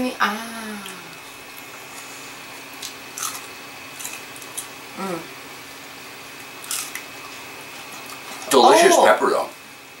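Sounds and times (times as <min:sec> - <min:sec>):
crisp crunches of chewing pepper: 0:02.8 - 0:04.7, 0:06.6 - 0:07.4.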